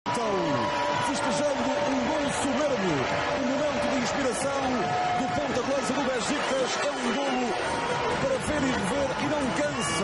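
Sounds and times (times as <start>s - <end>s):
man commentating: 0.1s - 10.0s
stadium crowd noise: 0.1s - 10.0s.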